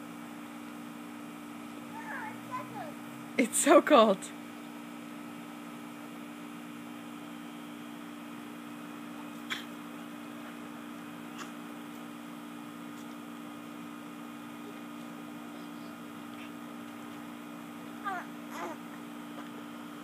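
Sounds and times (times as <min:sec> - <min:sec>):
faint hum: 0:00.0 - 0:20.0.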